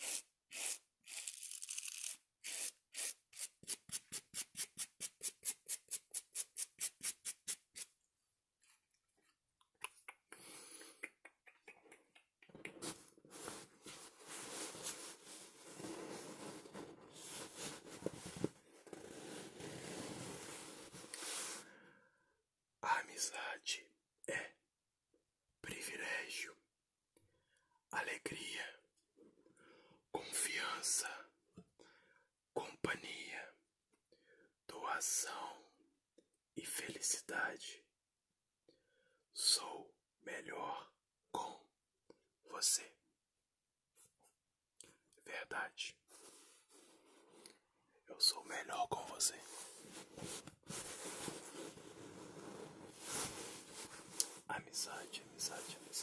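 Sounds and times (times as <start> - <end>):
close-up scratching and rubbing: 12.8 - 21.6, 49.3 - 54.5
person whispering: 22.8 - 24.6, 25.6 - 26.6, 27.9 - 28.8, 30.2 - 31.3, 32.6 - 33.6, 34.7 - 35.8, 36.6 - 37.9, 39.4 - 41.7, 42.5 - 43.0, 45.2 - 46.0, 48.0 - 49.9, 53.8 - 56.0.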